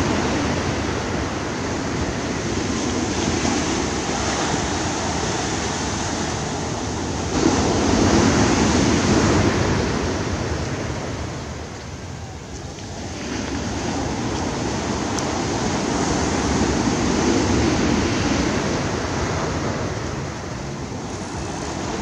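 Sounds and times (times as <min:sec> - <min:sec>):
ocean waves breaking on beach: 0:00.0 - 0:22.0.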